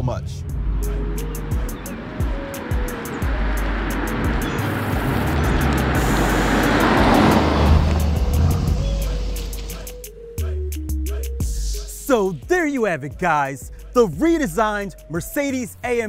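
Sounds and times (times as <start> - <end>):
background music with beat: 0.0 - 16.0
car engine passing by: 0.4 - 9.9.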